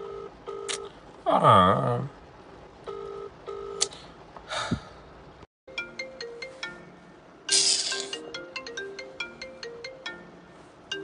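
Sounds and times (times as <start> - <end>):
phone ringtone melody: 5.7 - 11.0
burst of hiss: 7.5 - 8.2.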